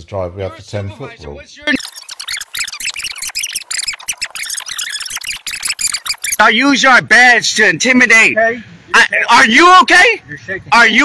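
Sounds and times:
sped-up squeaky speech: 0:01.7 - 0:06.6.

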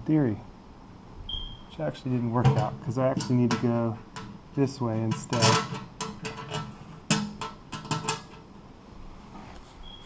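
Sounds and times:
smoke alarm chirp: 0:01.3 - 0:01.8.

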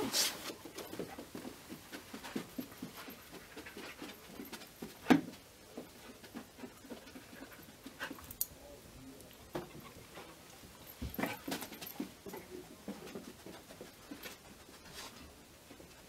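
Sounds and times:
dog panting: 0:05.9 - 0:08.5.

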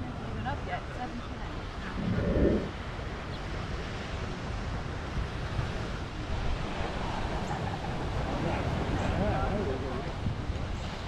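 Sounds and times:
wind buffeting microphone: 0:00.0 - 0:11.0
ocean surf breaking: 0:01.0 - 0:11.0.

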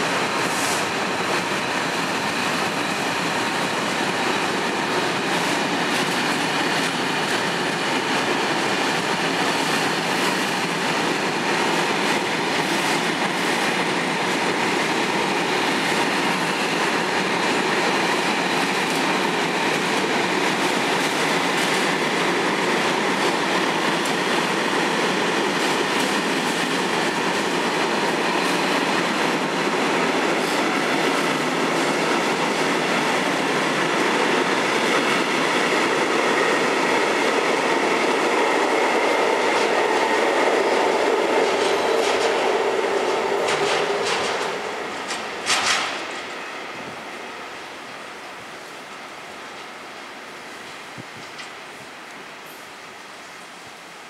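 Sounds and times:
freight wagons rolling on rails: 0:39.2 - 0:46.3.

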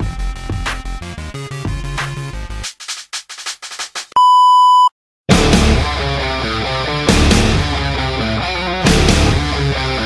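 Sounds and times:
quick percussive hits: 0:02.6 - 0:04.2
high test-tone beep: 0:04.2 - 0:04.9.

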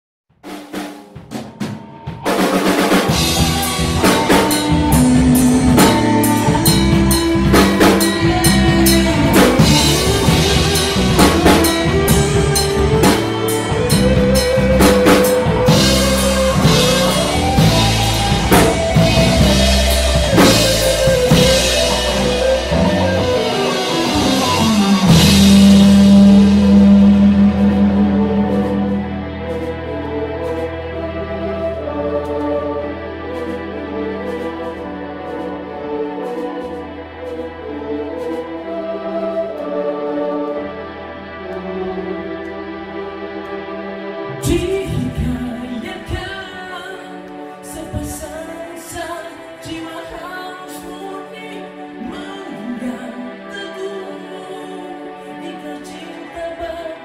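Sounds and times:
rock band playing live: 0:00.4 - 0:32.3.

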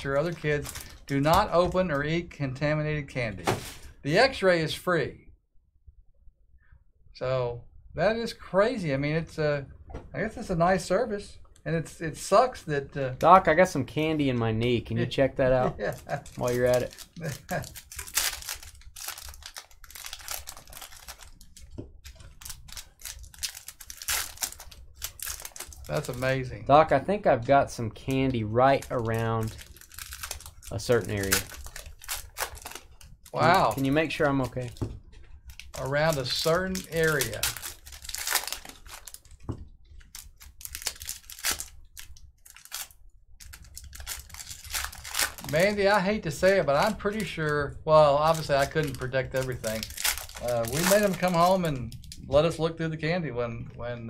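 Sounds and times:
foil wrappers crinkling and tearing: 0:00.0 - 0:01.7, 0:03.4 - 0:04.0, 0:15.8 - 0:26.5, 0:28.1 - 0:39.4, 0:40.0 - 0:47.6, 0:48.2 - 0:52.2.

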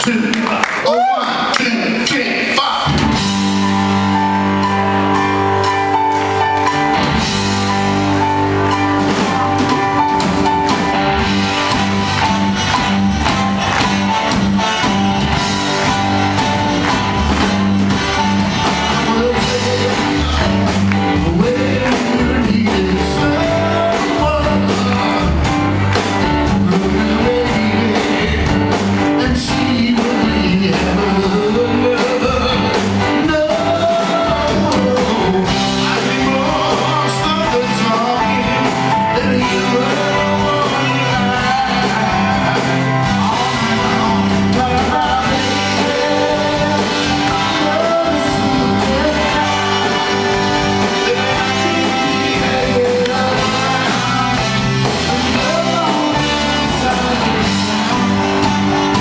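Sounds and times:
live rock band playing: 0:00.0 - 0:59.0.

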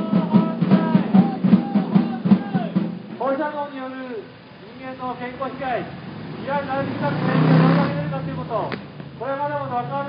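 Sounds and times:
man talking: 0:00.0 - 0:10.0
car passing close by: 0:05.9 - 0:08.8.

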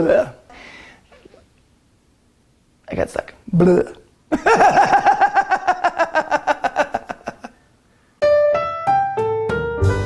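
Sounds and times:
man laughing heartily: 0:04.3 - 0:07.6.

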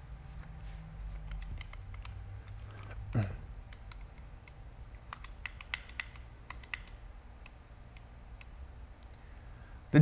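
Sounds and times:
low steady room hum: 0:00.0 - 0:10.0
keyboard typing clicks: 0:01.2 - 0:02.2, 0:03.7 - 0:09.2.

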